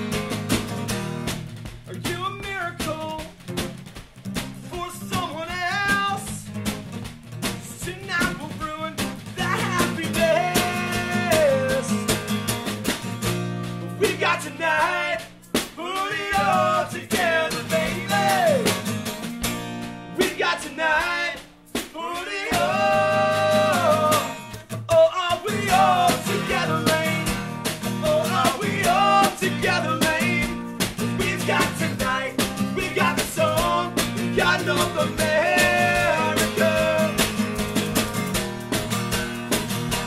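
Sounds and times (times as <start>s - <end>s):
snare drum: 0.0s - 40.0s
strummed acoustic guitar: 0.0s - 40.0s
man singing: 1.9s - 3.4s, 4.6s - 6.6s, 7.6s - 12.3s, 13.8s - 18.8s, 20.1s - 37.6s.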